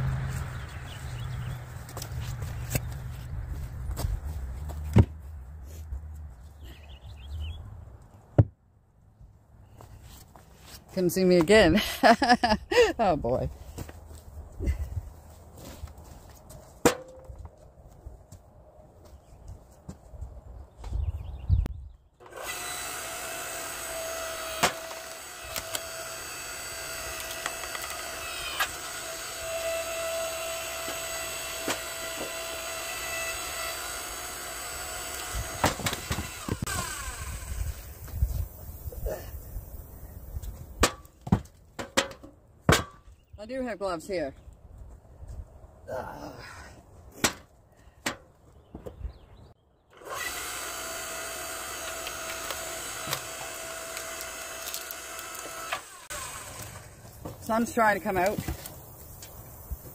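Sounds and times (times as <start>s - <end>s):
log splitter motor whining: 22.2s - 38.0s, 49.9s - 58.4s.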